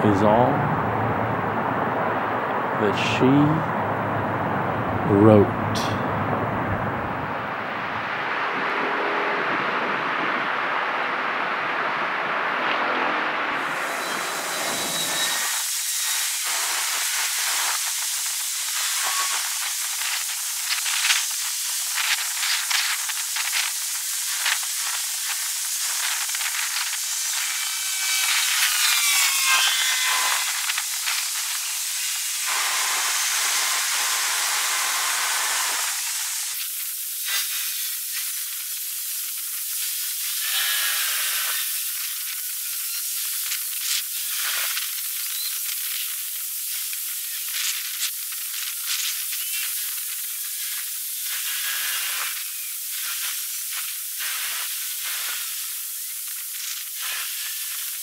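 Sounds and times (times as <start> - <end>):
steady high-pitched hiss: 7.1 - 58.0.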